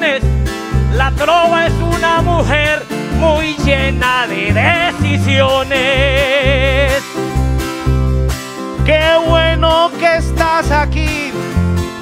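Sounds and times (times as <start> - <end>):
man singing: 0.0 - 7.3, 8.8 - 11.6
bass guitar low notes: 0.0 - 12.0
strummed tiple: 0.0 - 12.0.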